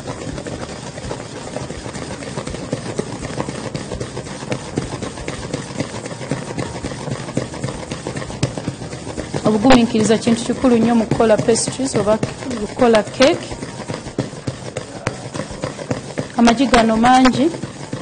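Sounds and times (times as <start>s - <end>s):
wooden spoon beating in metal bowl: 0.0s - 18.0s.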